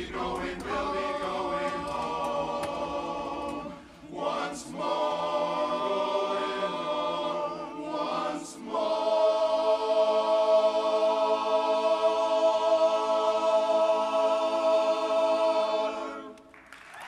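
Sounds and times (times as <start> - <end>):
men's a cappella chorus: 0.0 - 16.5.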